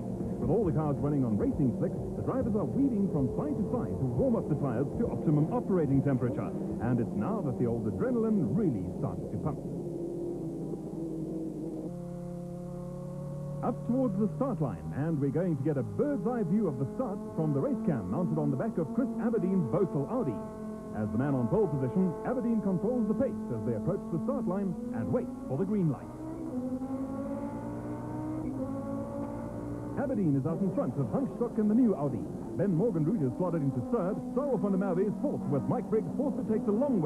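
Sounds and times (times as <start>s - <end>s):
racing car engines running: 0.0s - 37.0s.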